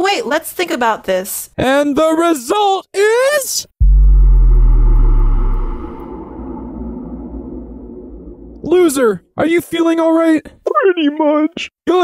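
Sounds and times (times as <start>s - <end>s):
deep bass boom: 3.8s - 9.2s.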